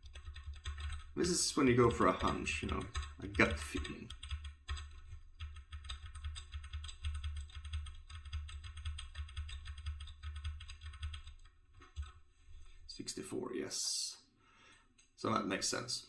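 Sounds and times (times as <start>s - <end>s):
computer keyboard keystrokes: 0.0s - 12.2s.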